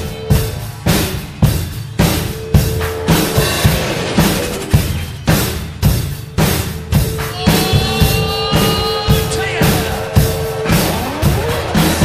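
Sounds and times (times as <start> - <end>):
drum kit playing a rock beat: 0.0 - 12.0.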